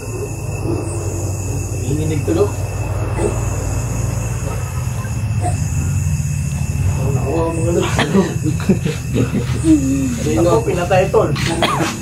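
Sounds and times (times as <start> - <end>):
thin high tone: 0.0 - 7.8
low droning hum: 0.0 - 11.8.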